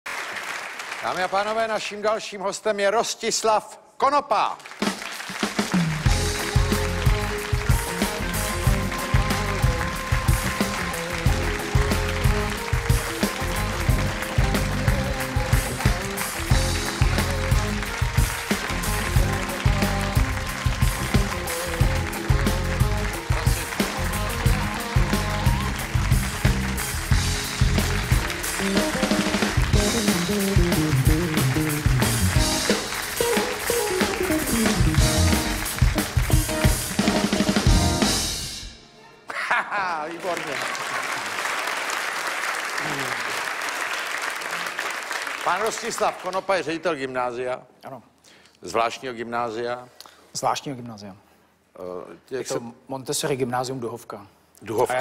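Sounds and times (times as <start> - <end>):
live band playing upbeat music: 4.7 - 39.2
drum kit beat: 4.8 - 38.9
electric bass: 5.9 - 32.9, 34.0 - 38.2.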